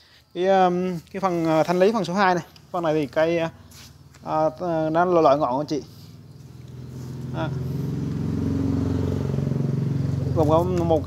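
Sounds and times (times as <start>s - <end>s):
vehicle engine humming: 0.8s - 11.0s.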